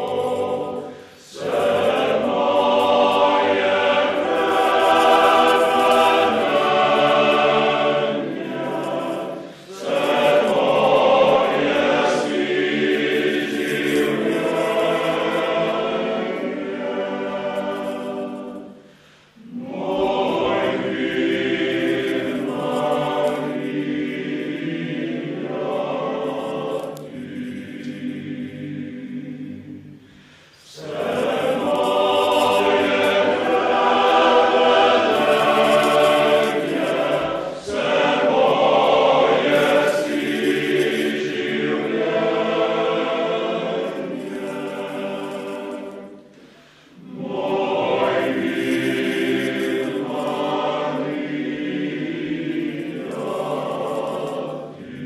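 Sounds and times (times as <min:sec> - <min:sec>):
male choir singing: 0:00.0 - 0:55.0.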